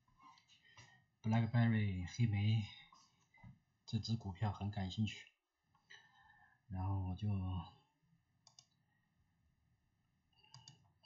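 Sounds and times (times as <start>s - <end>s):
faint clicks: 8.4s - 8.8s, 10.4s - 10.9s.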